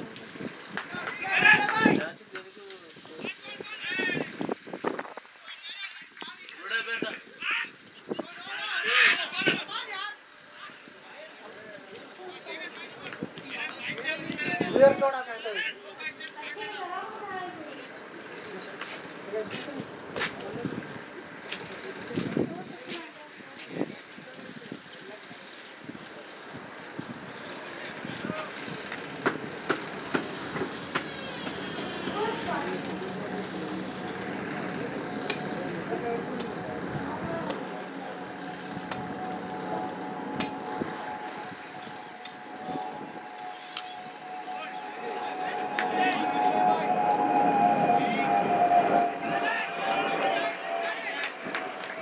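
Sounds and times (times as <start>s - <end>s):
voices: 0.0s - 52.0s
steady droning tone: 29.0s - 52.0s.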